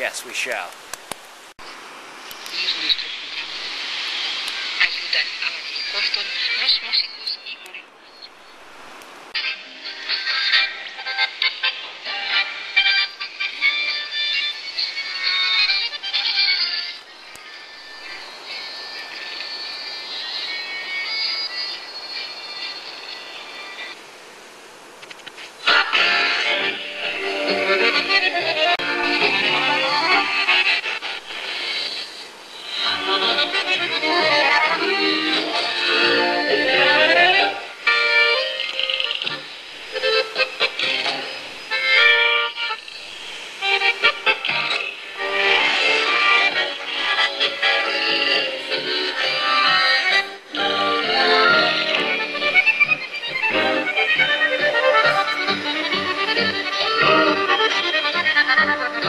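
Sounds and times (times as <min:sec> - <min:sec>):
music on small radio speaker: 0:03.4 - 0:07.8, 0:09.4 - 0:24.0, 0:25.6 - 0:59.0.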